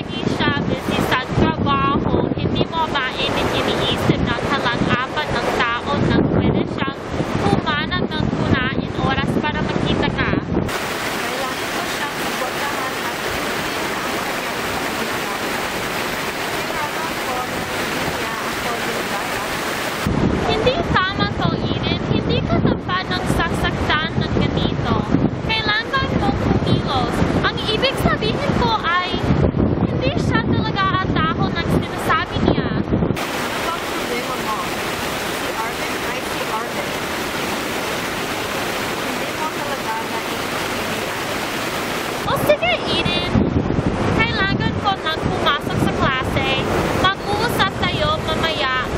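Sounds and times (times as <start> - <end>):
water fountain splashing: 10.7 - 21.1, 33.2 - 43.4, 44.3 - 48.9.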